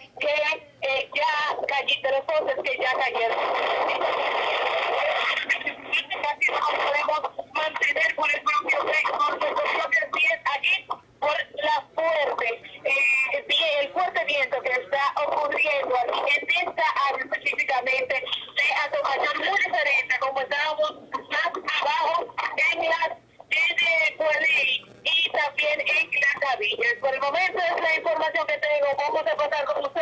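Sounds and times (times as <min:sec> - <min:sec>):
person talking: 0:00.0 - 0:30.0.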